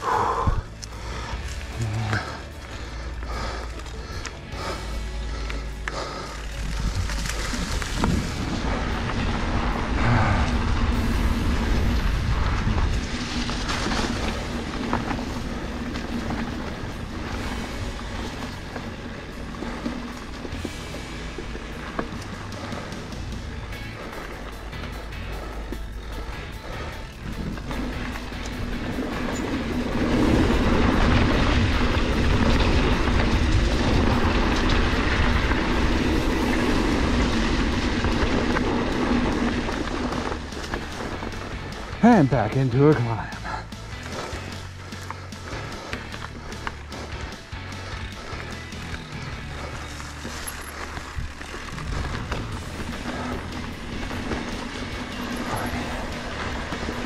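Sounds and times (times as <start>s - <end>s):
background music: 0.0s - 57.0s
bike rattling over bumps: 0.0s - 57.0s
bike tyres rolling on dirt: 0.0s - 57.0s.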